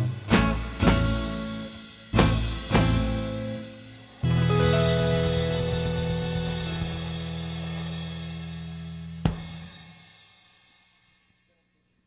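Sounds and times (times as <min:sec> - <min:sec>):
rock band closing chord: 0:00.0 - 0:09.9
sharp drum and cymbal hit: 0:00.0 - 0:11.4
cymbal wash: 0:00.0 - 0:11.6.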